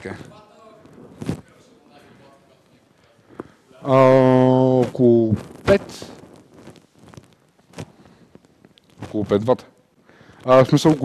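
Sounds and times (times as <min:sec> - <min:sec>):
shuffling: 0:00.0 - 0:09.6.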